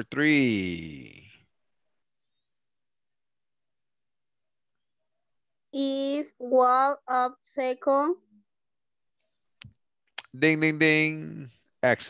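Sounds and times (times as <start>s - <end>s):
person speaking: 0.0s - 1.4s.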